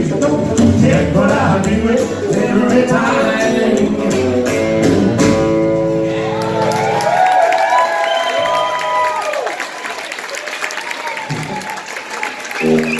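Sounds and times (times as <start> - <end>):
audience applauding and cheering: 6.0 - 12.9
audience shouts: 6.0 - 12.9.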